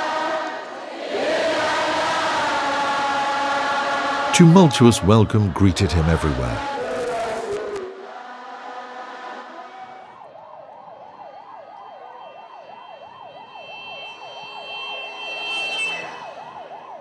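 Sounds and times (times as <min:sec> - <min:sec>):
siren yelping: 0:09.4 - 0:17.0.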